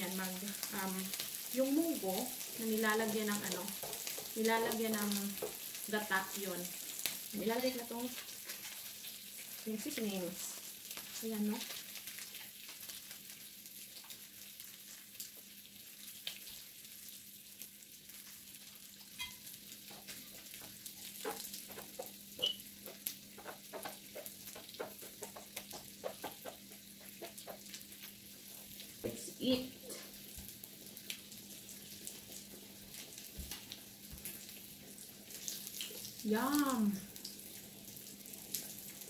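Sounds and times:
meat sizzling on a grill: 0:00.0 - 0:39.0.

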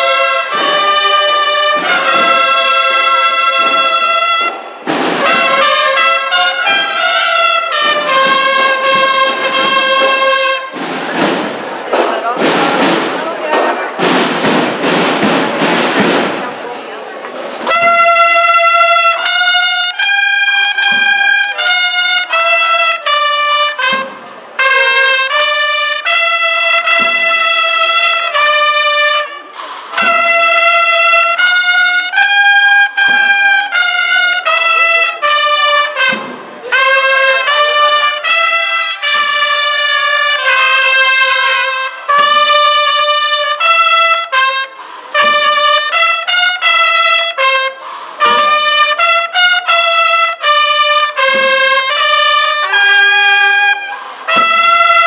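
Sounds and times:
brass bugle band playing: 0:00.0 - 0:16.5, 0:17.6 - 0:55.0
dense noise: 0:00.0 - 0:19.3.

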